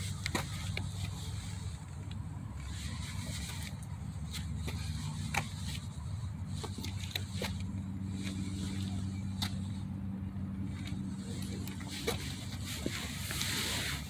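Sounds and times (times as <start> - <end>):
vehicle engine humming: 0.0 - 14.0.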